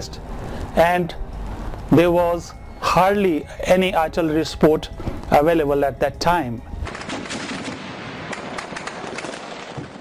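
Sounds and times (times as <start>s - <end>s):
rapid gunfire: 6.9s - 10.0s.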